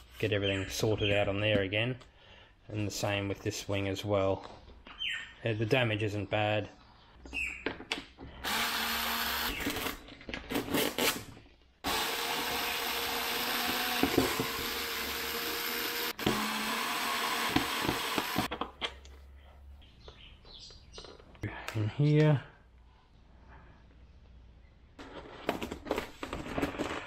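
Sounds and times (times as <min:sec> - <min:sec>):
electric screwdriver motor whine: 0:08.5 - 0:09.8, 0:11.9 - 0:18.5.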